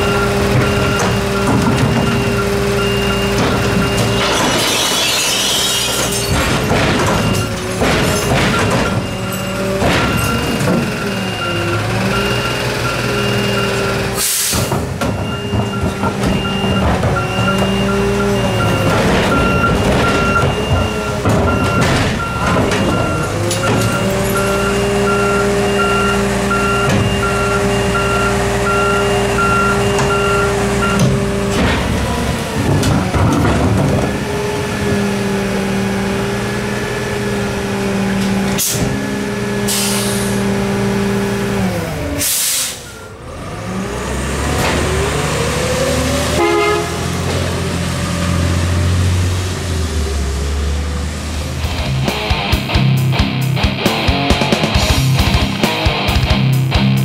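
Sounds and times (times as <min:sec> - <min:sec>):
beeping alarm: 0:00.0 - 0:05.0, 0:07.0 - 0:14.5, 0:15.1 - 0:31.2
garbage truck engine running: 0:00.0 - 0:57.0
air brakes hissing: 0:14.2 - 0:14.7, 0:39.7 - 0:40.4, 0:42.2 - 0:43.0.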